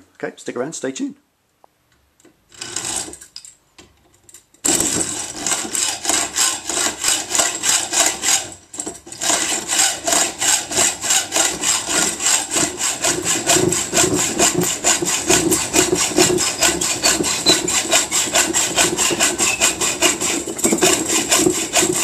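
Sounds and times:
hacksaw cutting steel tube: 0:02.5 - 0:03.2, 0:04.6 - 0:22.0.

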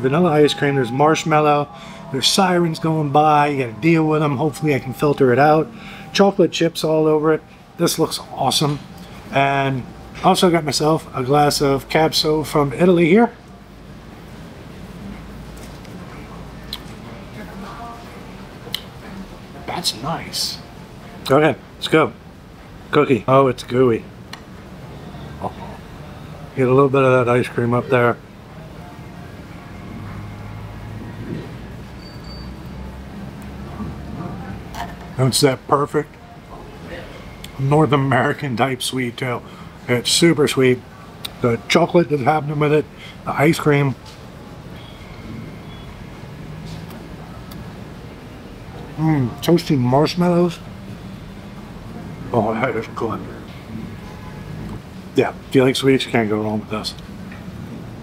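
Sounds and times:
road traffic rumble: 0:00.0 - 0:58.0
faint high beep: 0:32.0 - 0:32.8, 0:44.7 - 0:46.1.

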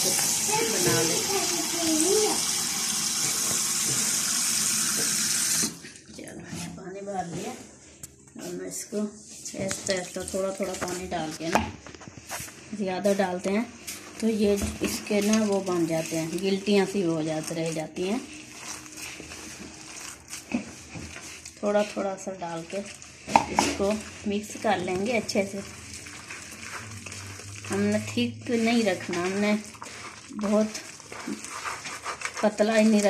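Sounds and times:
tap water running into jug: 0:00.0 - 0:06.0
hand squishing damp flour mixture: 0:00.0 - 0:33.0.

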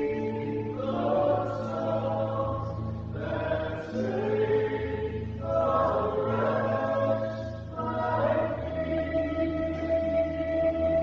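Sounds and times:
voices singing a hymn: 0:00.0 - 0:11.0.

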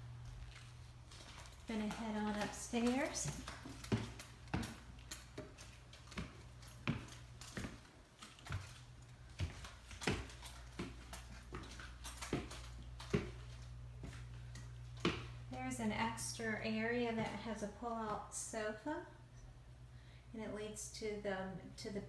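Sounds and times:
low steady hum: 0:00.0 - 0:22.0
footsteps on wooden stairs: 0:00.3 - 0:15.4.

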